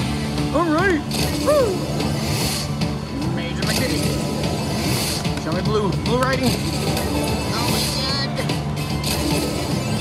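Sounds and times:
slot machine bonus music: 0.0s - 10.0s
slot machine sound effects: 0.0s - 10.0s.

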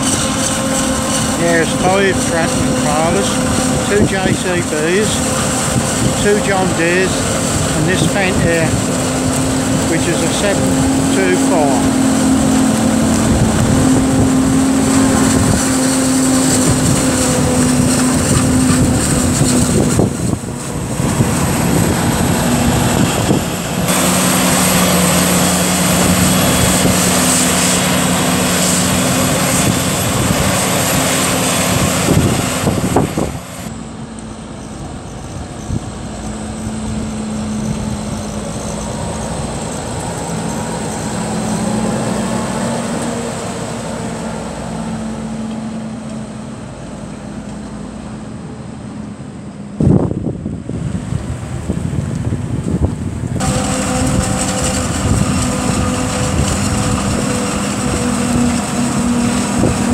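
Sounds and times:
heavy diesel engines running: 0.0s - 59.9s
tractor engine running: 0.0s - 59.9s.

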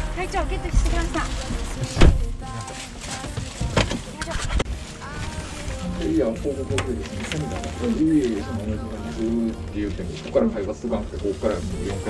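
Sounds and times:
indistinct talking: 0.0s - 12.0s
camera rumbling and rustling: 0.4s - 12.0s.

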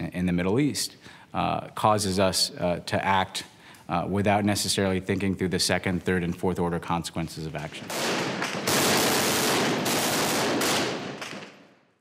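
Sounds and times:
automatic gunfire: 7.9s - 11.8s.

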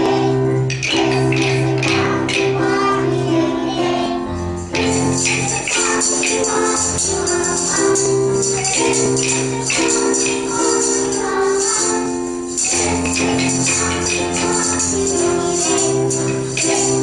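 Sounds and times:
children singing: 0.0s - 17.0s
musical accompaniment: 0.0s - 17.0s
jingle bells shaking: 4.6s - 17.0s.

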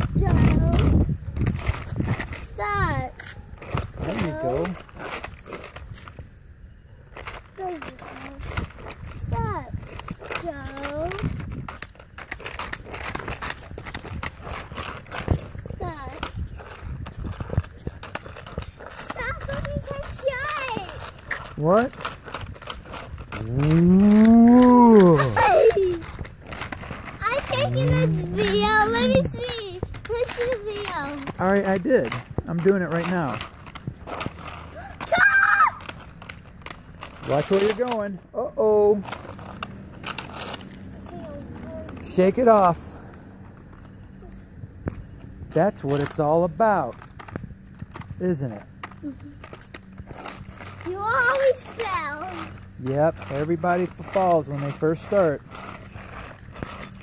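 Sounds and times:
skate wheels rolling on asphalt: 0.0s - 57.0s.

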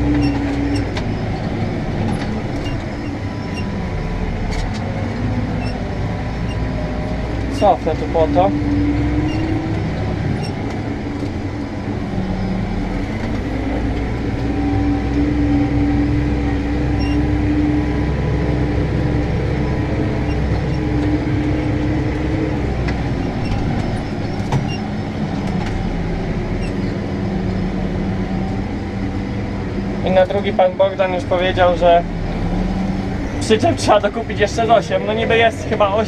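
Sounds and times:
tractor diesel engine under load: 0.0s - 36.0s.

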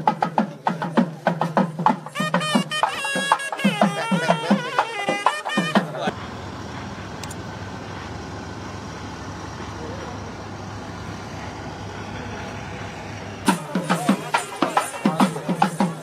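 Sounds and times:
music with drums: 0.0s - 6.1s, 13.4s - 16.0s
engine hum: 6.0s - 13.8s.

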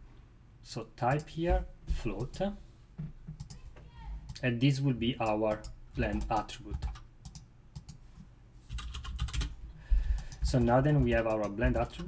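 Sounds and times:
typing on computer keyboard: 5.5s - 8.0s, 8.7s - 9.5s, 10.1s - 12.0s.

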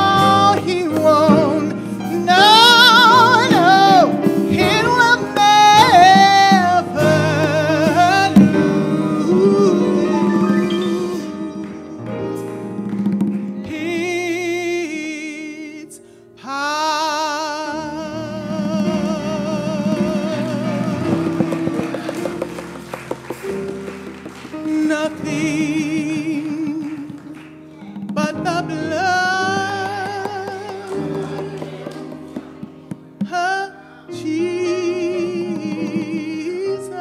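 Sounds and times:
instrumental accompaniment: 0.0s - 15.3s, 17.8s - 37.0s
sustained band chords: 6.8s - 13.8s.

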